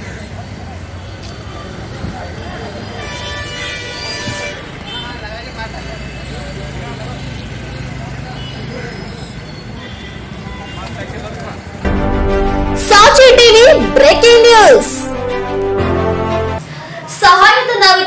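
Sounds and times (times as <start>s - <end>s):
traffic: 0.0s - 11.9s
vehicle horn: 3.0s - 5.2s
people talking: 12.8s - 15.2s, 17.1s - 18.0s.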